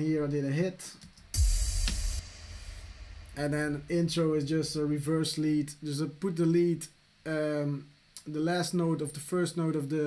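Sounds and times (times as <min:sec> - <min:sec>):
bright noisy crash: 0:01.3 - 0:05.0
deep boom impact: 0:01.3 - 0:05.0.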